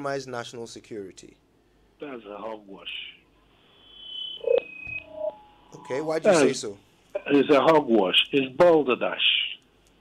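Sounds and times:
short electronic tones: 3.8 - 6.5.

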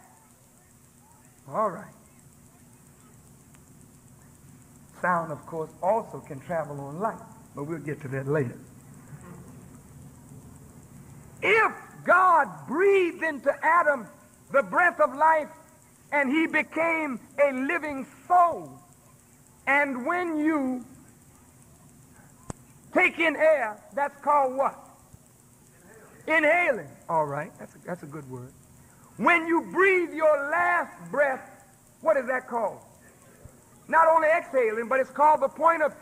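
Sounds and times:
cassette tape hiss: 0.0 - 36.0
man speaking: 1.4 - 2.0, 4.9 - 8.7, 11.4 - 18.9, 19.6 - 21.0, 22.9 - 25.0, 25.8 - 28.6, 29.2 - 36.0.

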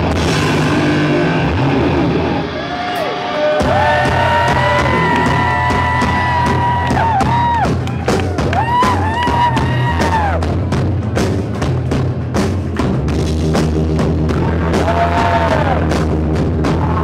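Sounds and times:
drum and cymbal hits: 0.0 - 2.2, 3.0 - 17.0
distorted electric guitars: 0.0 - 17.0
punk rock band playing: 0.0 - 17.0.

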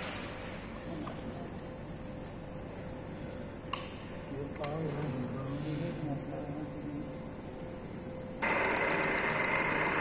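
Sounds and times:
packaging machine whining: 8.4 - 10.0.

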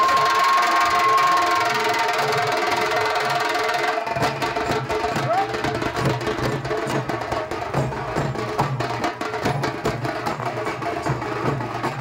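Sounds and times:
drums beating fast rhythm: 0.0 - 12.0.

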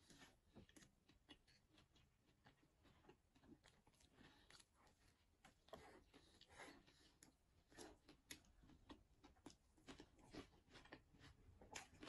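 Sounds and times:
chewing crispy food: 0.0 - 12.0.

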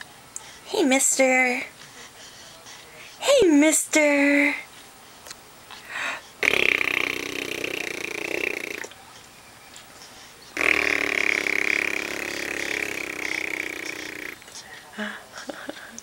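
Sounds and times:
adult blowing raspberries: 6.4 - 8.9, 10.6 - 14.5.

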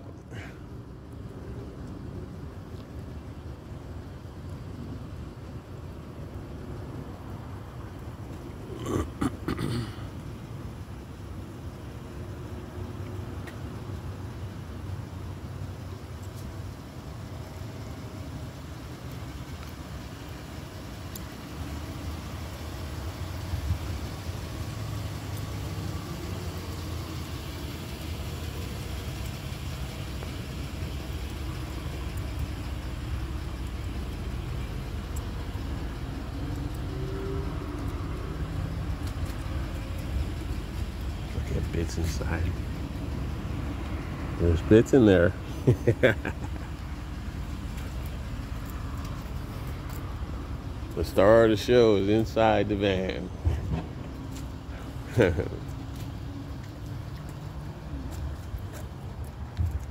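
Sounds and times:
van engine idling: 0.0 - 59.9.

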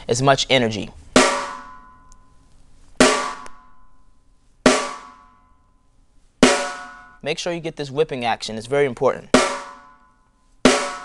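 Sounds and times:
snare drum strokes ringing: 1.2 - 1.9, 3.0 - 3.7, 4.7 - 5.4, 6.4 - 7.2, 9.3 - 10.0, 10.6 - 11.0.

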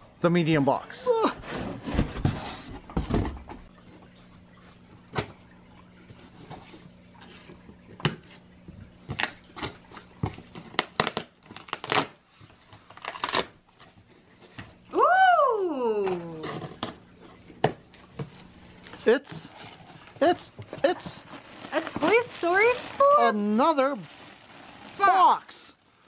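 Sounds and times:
scissors cutting packing tape: 10.8 - 12.2, 12.9 - 13.6
rustling: 18.3 - 25.9
cardboard box handled: 19.0 - 25.3.

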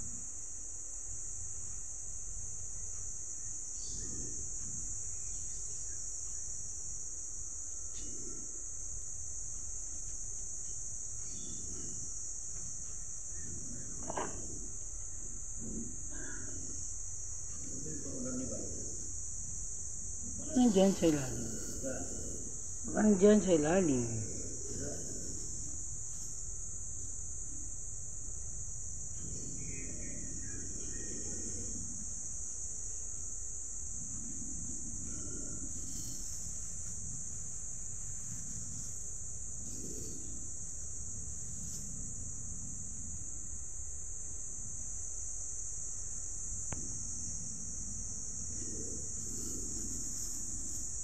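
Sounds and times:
insect chorus droning: 0.0 - 51.0.

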